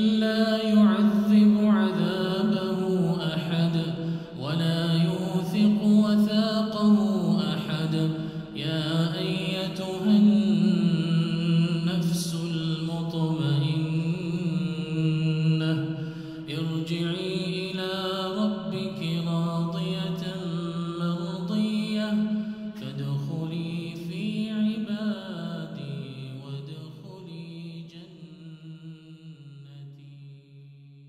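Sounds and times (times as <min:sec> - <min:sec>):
man chanting recitation: 0:00.0 - 0:31.0.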